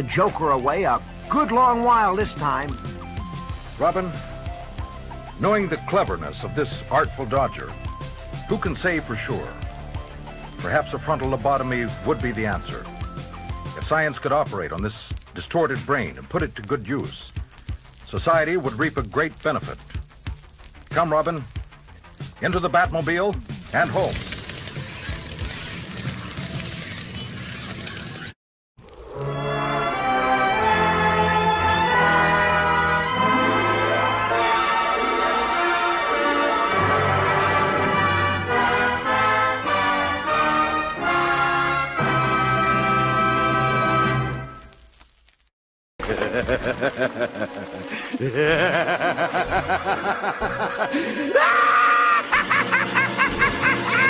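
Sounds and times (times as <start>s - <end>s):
fast-rattling car engine: 23.6s - 28.3s
maniacal laughter: 46.0s - 54.0s.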